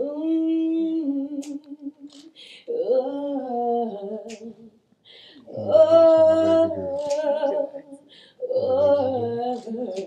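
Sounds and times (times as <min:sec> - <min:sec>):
woman singing a ballad: 0:00.0 - 0:04.8, 0:05.5 - 0:10.0
breaths between phrases: 0:05.0 - 0:05.6, 0:07.9 - 0:08.5.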